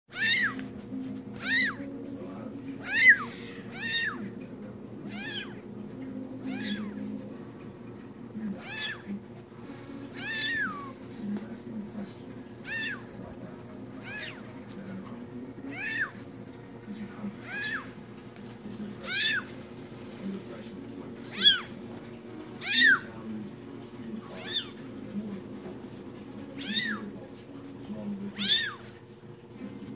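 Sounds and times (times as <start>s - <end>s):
kitten mewing: 0.1s - 0.6s, 1.4s - 1.9s, 2.8s - 4.2s, 5.0s - 5.6s, 6.4s - 7.1s, 8.6s - 9.1s, 10.1s - 11.0s, 12.6s - 13.1s, 14.0s - 14.5s, 15.6s - 16.2s, 17.4s - 18.0s, 19.0s - 19.5s, 21.3s - 21.8s, 22.6s - 23.1s, 24.3s - 24.8s, 26.6s - 27.1s, 28.3s - 28.9s.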